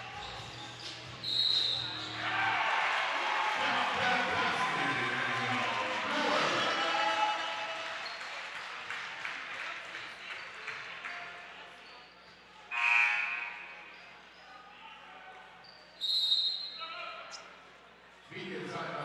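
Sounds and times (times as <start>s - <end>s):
crowd chatter: 0.0s - 19.0s
whistle-like tone: 1.2s - 2.0s, 16.0s - 16.8s.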